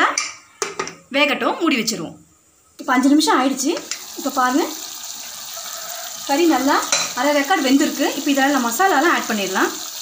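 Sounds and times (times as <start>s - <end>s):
pressure cooker hissing: 2.8s - 10.0s.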